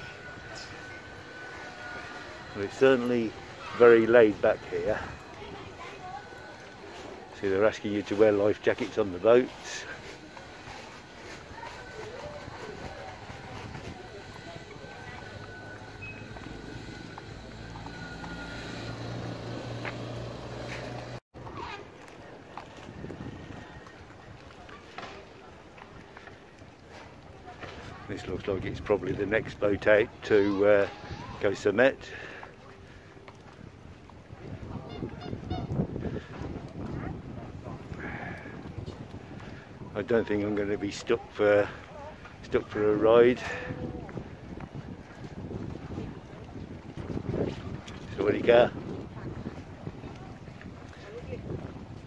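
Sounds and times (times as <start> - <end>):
outdoor background noise: 0.0 - 52.0
wind rumbling on microphone: 9.9 - 31.6, 32.5 - 52.0
low engine hum: 10.2 - 21.2.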